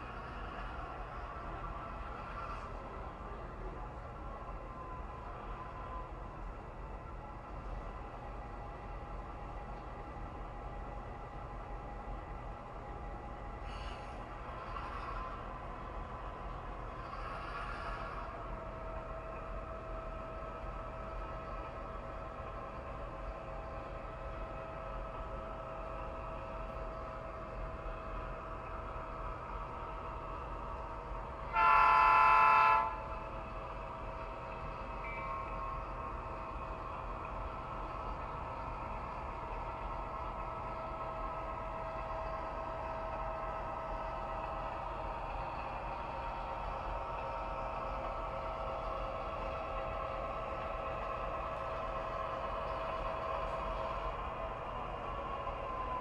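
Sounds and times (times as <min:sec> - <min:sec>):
model locomotive engine drone: 0:00.0 - 0:56.0
locomotive horn blast: 0:31.5 - 0:33.1.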